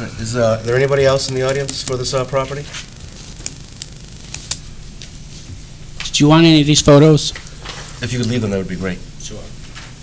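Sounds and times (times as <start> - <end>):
faint background hiss: 0.0 - 10.0
steady low hum: 0.0 - 10.0
sharp clicks: 1.1 - 5.2.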